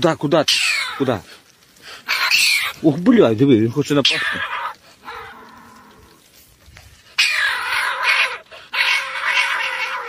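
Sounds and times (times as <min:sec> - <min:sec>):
polecat screeching and hissing: 0:00.4 - 0:02.9, 0:04.0 - 0:06.2, 0:07.0 - 0:10.0.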